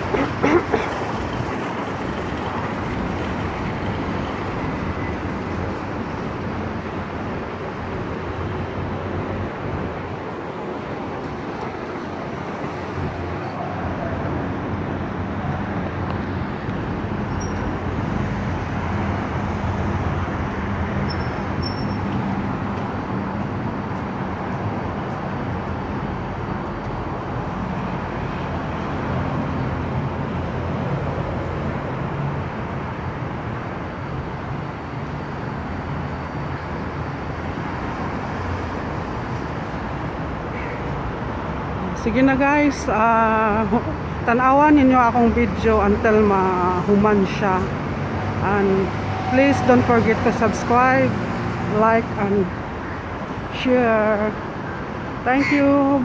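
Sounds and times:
cars passing on road: 0.0 - 56.0.

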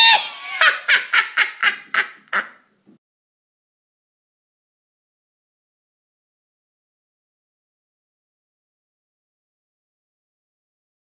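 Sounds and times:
high-pitched shriek and cackling laugh: 0.0 - 2.6.

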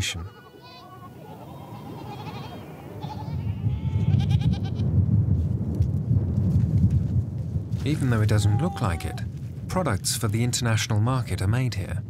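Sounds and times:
goats bleating: 0.0 - 4.8.

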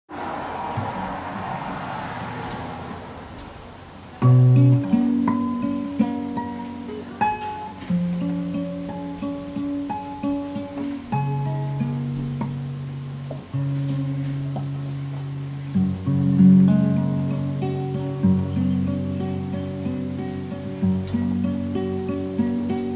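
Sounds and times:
classical guitar fingerstyle: 3.3 - 22.9
loud plucked guitar chord: 4.2 - 22.9.

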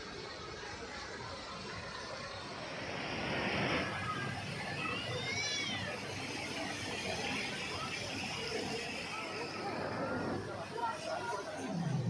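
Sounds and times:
busy outdoor background noise: 0.0 - 12.0
hiss: 2.3 - 10.5.

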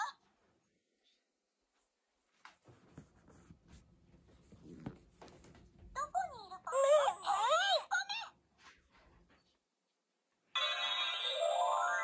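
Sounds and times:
squeaky toy character voice: 6.0 - 8.3.

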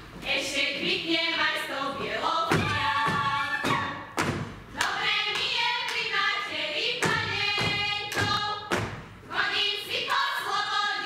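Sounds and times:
women singing folk song: 0.2 - 4.2, 4.8 - 11.0
boots stamping on stage floor: 2.5 - 4.6, 7.0 - 9.1.

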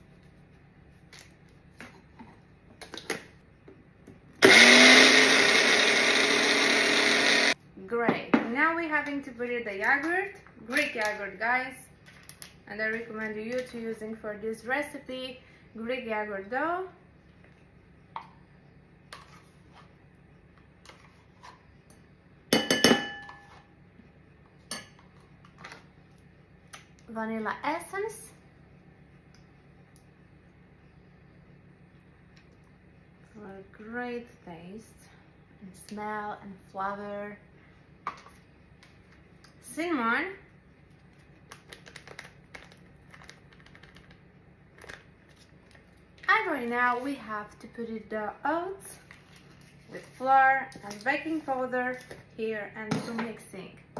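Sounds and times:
metal spoon clinking on pot and bowl: 22.6 - 23.5
paper packet tapped and shaken: 41.1 - 45.5.

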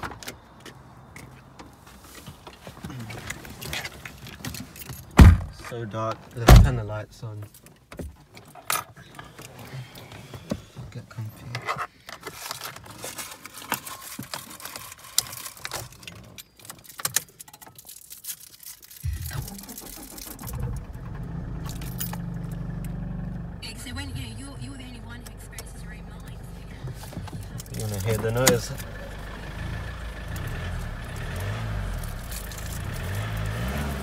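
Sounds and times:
clicking and rustling in car: 0.0 - 23.0, 25.2 - 28.9, 31.4 - 33.6
car engine starting and idling: 18.8 - 34.0.

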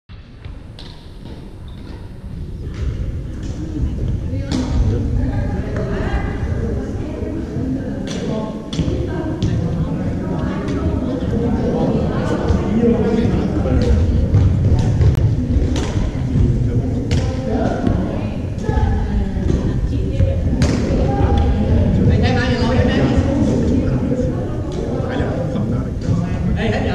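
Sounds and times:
sharp hits echoing in gymnasium: 0.1 - 26.4
indistinct voices: 1.6 - 26.9.

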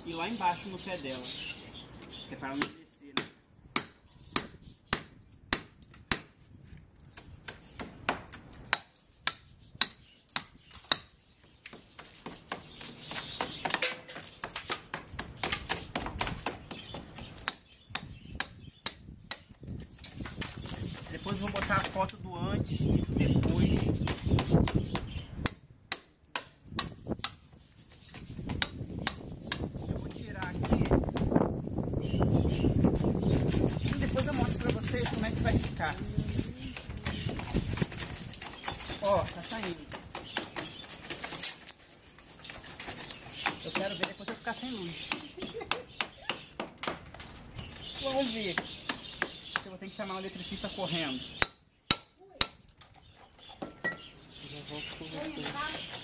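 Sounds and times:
hammer and chisel on concrete: 2.4 - 22.3, 23.2 - 31.4, 32.8 - 54.1, 54.7 - 56.0.

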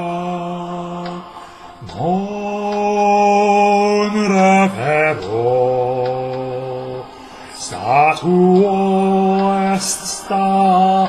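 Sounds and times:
man singing a wordless chant: 0.0 - 11.0.

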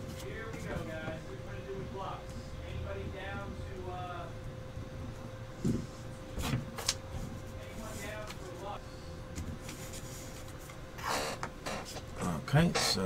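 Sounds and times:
faint hum: 0.0 - 13.0.

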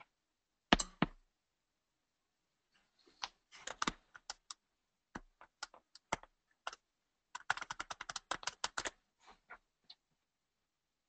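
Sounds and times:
keyboard typing: 3.2 - 4.6, 5.2 - 9.0.

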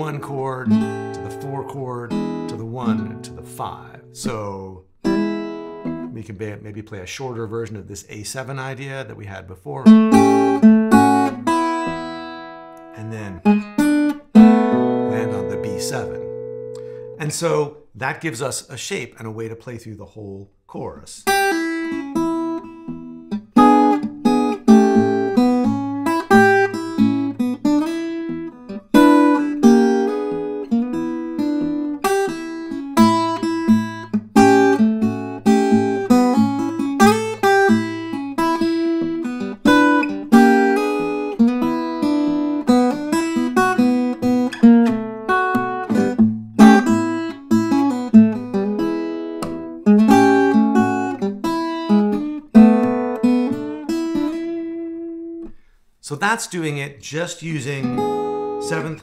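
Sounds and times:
acoustic guitar fingerstyle blues: 0.0 - 19.5, 21.2 - 59.0.

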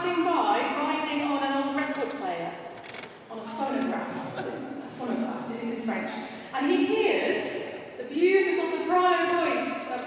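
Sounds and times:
woman speaking: 0.0 - 2.5, 3.3 - 10.0.

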